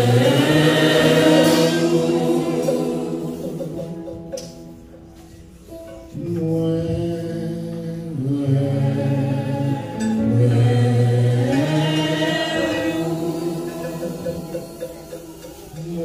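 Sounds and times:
slow worship singing: 0:00.0 - 0:16.0.

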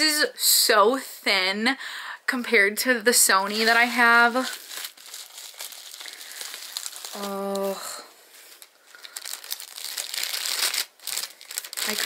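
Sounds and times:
plastic packaging crinkling: 0:03.5 - 0:12.0.

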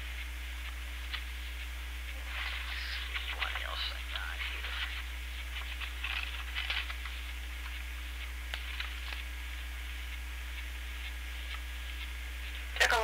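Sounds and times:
low electrical hum: 0:00.0 - 0:13.0
papers rustling: 0:00.6 - 0:09.7.

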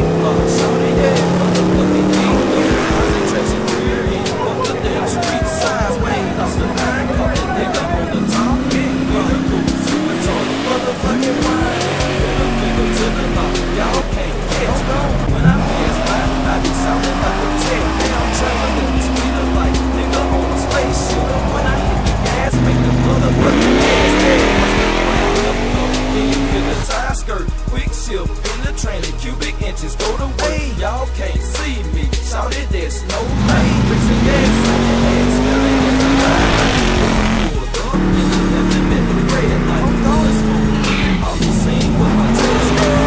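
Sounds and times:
car engines accelerating: 0:00.0 - 0:43.0
hip-hop music: 0:00.0 - 0:43.0
tire squeal: 0:33.4 - 0:43.0.

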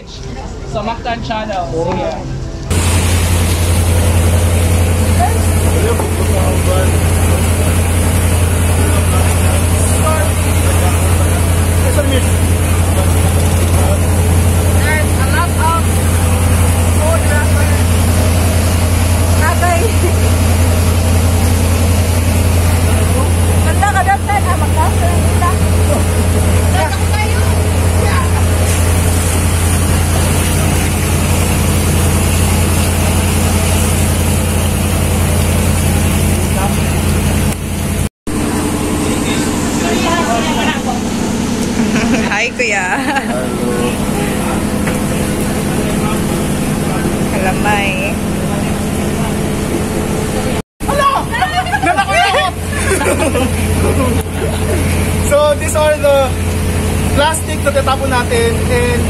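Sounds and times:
boat engine humming: 0:00.0 - 0:59.0
water noise: 0:02.4 - 0:59.0
people's voices: 0:22.5 - 0:31.6, 0:38.9 - 0:56.4.

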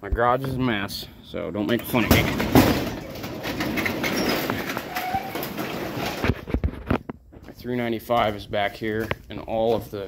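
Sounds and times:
garage door rolling open: 0:01.7 - 0:06.4.

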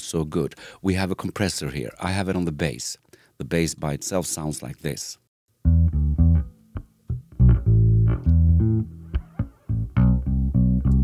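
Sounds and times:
electric bass guitar plucked notes: 0:05.6 - 0:11.0.

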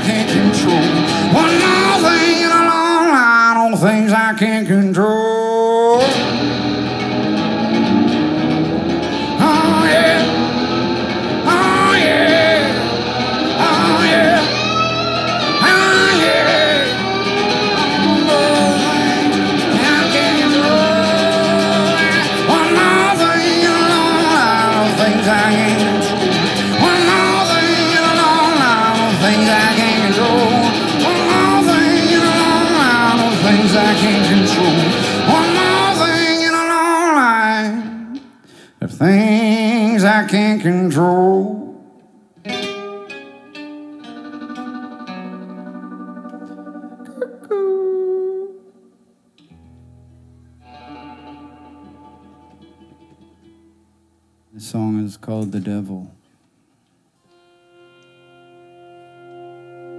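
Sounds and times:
live band instrumental: 0:00.0 - 0:03.0, 0:06.0 - 0:37.1, 0:42.4 - 0:48.5, 0:49.8 - 0:53.7, 0:57.3 - 0:59.9
pedal steel guitar: 0:00.0 - 0:03.6, 0:05.7 - 0:38.2, 0:42.4 - 0:54.2, 0:57.2 - 0:59.9
strummed acoustic guitar: 0:00.0 - 0:05.1, 0:05.8 - 0:41.6, 0:42.4 - 0:47.7, 0:49.4 - 0:56.0
wordless singing: 0:00.0 - 0:06.3, 0:09.2 - 0:41.8.

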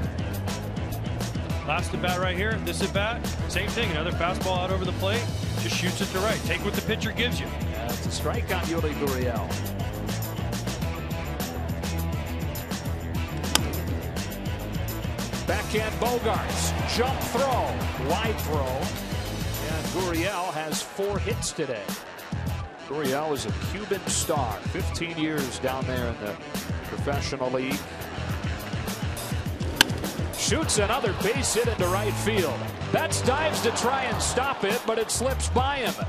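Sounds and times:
background music with steady beat: 0:00.0 - 0:36.0
background music with low beat: 0:09.4 - 0:20.2
baseball bat cracking: 0:13.3 - 0:14.3, 0:29.4 - 0:31.0.

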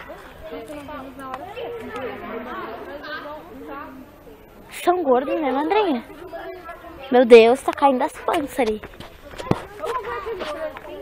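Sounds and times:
chatter of voices: 0:00.0 - 0:11.0
close speech: 0:00.0 - 0:11.0.

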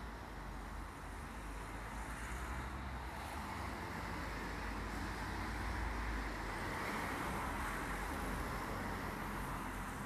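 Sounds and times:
distant road traffic hum: 0:00.0 - 0:10.0.

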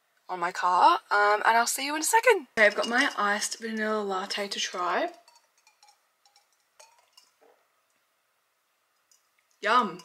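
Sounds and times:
small glass clinks: 0:02.6 - 0:03.6, 0:05.1 - 0:07.4.

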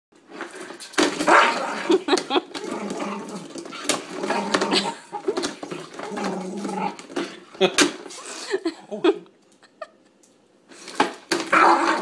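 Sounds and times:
dog barking and whining: 0:11.5 - 0:12.0.

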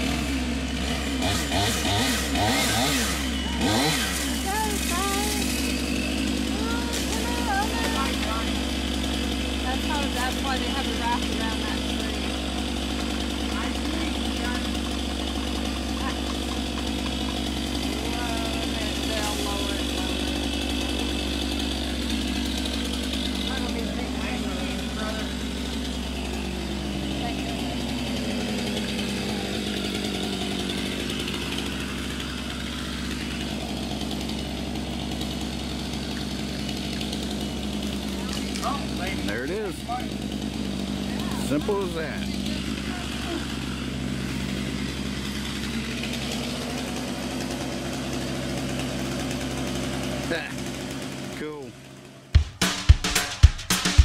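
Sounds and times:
chainsaw cutting wood: 0:00.0 - 0:54.0.

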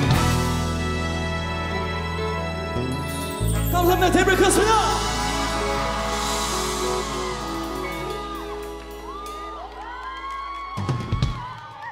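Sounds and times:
band chord ringing out: 0:00.0 - 0:09.8
held bass note: 0:02.7 - 0:09.6
crowd screaming and whooping: 0:04.8 - 0:11.9.

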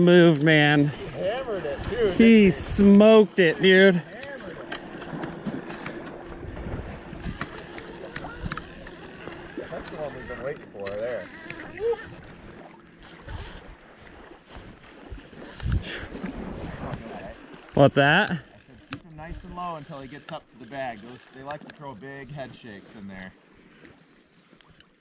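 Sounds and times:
river water washing: 0:00.0 - 0:24.8
wind on microphone: 0:00.9 - 0:03.0, 0:05.0 - 0:08.8, 0:11.7 - 0:17.1
light clicks: 0:07.2 - 0:09.6.

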